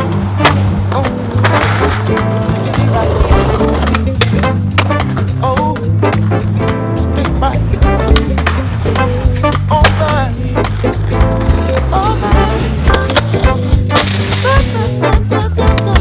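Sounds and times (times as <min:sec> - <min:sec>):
skateboard pops and landings: 0:00.0 - 0:05.8, 0:07.8 - 0:16.0
background music: 0:00.0 - 0:16.0
skateboard wheels rolling on concrete: 0:00.0 - 0:16.0.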